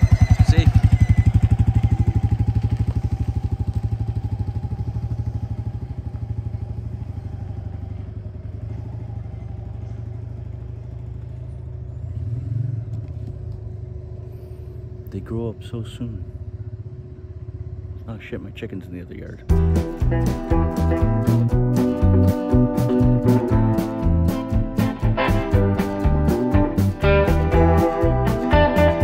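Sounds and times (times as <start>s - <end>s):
motorcycle engine riding off: 0.0s - 14.9s, 19.5s - 29.0s.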